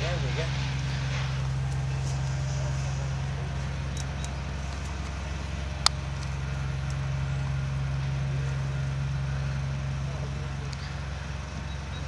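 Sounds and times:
motor humming: 0:00.0 - 0:12.0.

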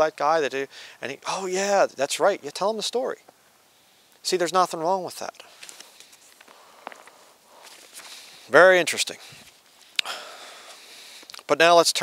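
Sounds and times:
paper pages rustling: 0:05.3 - 0:08.5, 0:09.2 - 0:09.9.

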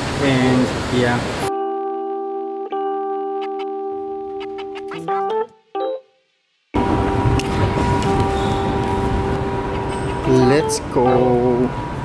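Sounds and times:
shopping mall background roar: 0:06.8 - 0:12.0
steady hum: 0:06.8 - 0:12.0.

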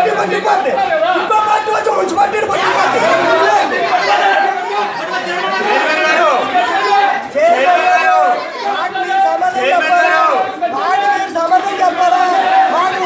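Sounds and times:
man speaking into a microphone: 0:00.0 - 0:03.8
people talking at once: 0:00.0 - 0:13.0.

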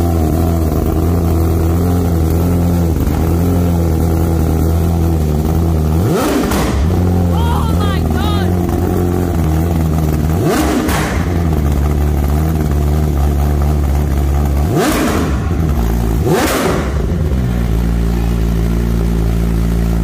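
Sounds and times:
motorcycle engine idling and revving: 0:00.0 - 0:20.0.

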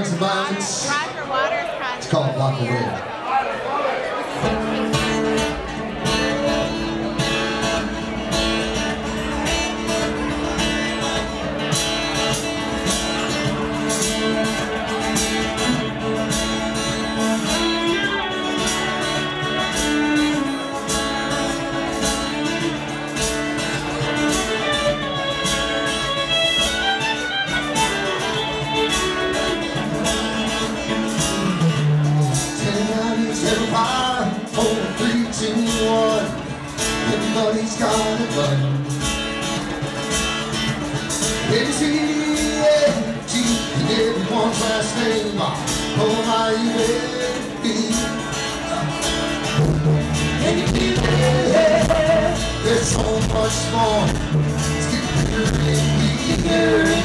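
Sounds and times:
rock band playing through speakers: 0:04.3 - 0:57.0.

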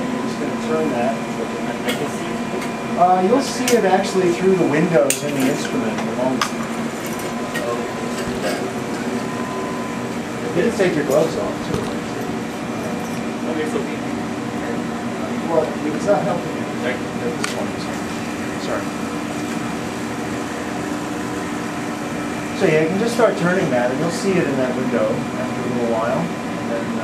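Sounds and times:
vacuum equipment and fans humming: 0:00.0 - 0:27.0
ventilation air hiss: 0:00.0 - 0:27.0.

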